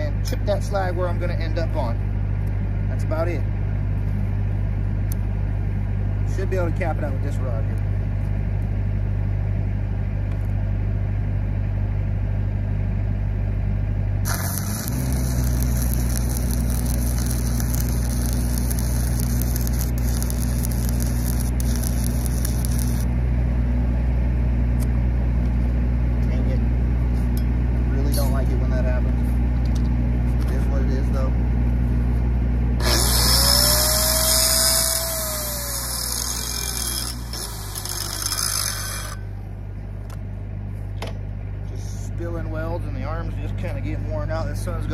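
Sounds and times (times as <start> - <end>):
welding machine engine hum: 7.3 - 41.6
welding arc crackling: 14.2 - 23.1, 32.8 - 39.2
angle grinder spinning: 14.3 - 23.1, 32.8 - 39.3.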